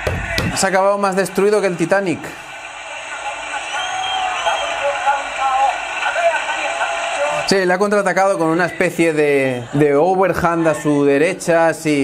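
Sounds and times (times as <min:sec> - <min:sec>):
fight commentator's voice: 0:00.1 - 0:12.0.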